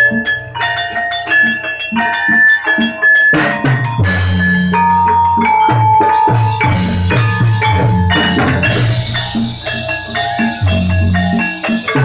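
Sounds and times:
rhythmic drum strokes: 0:00.0 - 0:12.0
ringing metallophone notes: 0:00.0 - 0:12.0.

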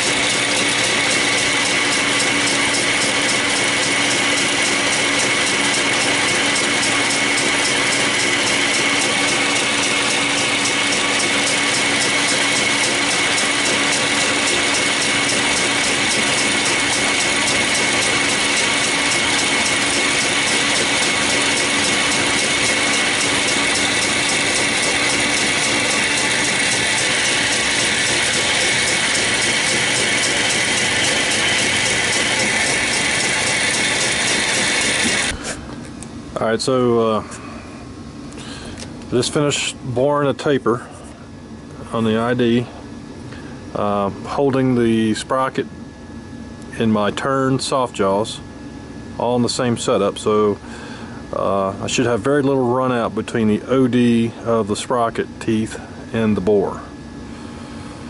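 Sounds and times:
lathe mechanical clatter: 0:00.0 - 0:35.4
metal lathe gear whine: 0:00.0 - 0:35.4.

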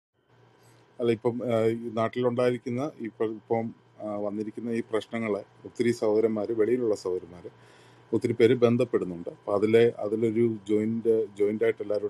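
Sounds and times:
person talking: 0:01.0 - 0:12.0.

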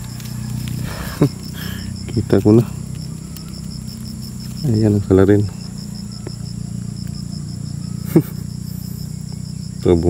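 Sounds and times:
crickets and insects chirping: 0:00.0 - 0:10.0
low steady hum: 0:00.0 - 0:10.0.

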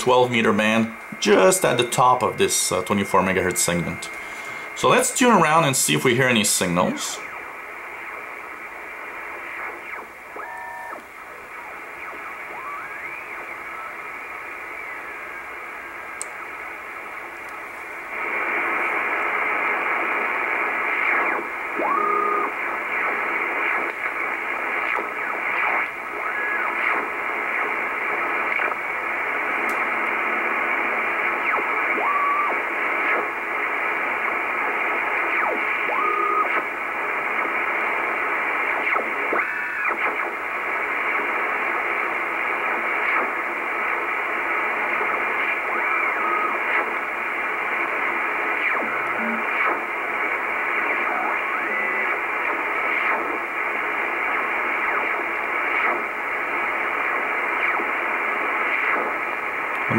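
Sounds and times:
radio band noise hiss: 0:00.0 - 0:59.9
radio carrier whistles: 0:11.6 - 0:15.8, 0:18.2 - 0:44.0, 0:44.6 - 0:59.9.

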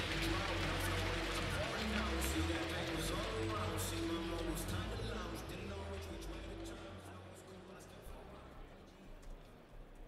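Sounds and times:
hall music: 0:00.0 - 0:08.6.

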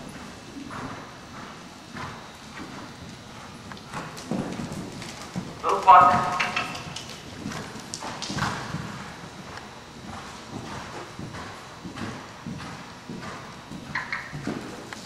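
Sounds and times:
horse hoofbeats on soft dirt: 0:00.0 - 0:15.0.

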